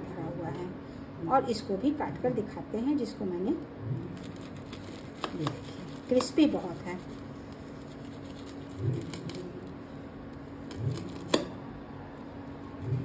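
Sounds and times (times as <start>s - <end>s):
steady low hum: 0.0s - 13.0s
fried crust crackling: 4.2s - 9.5s.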